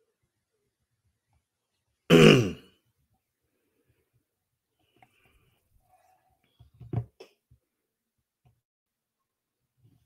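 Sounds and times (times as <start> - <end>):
man clearing his throat: 2.1 - 2.7.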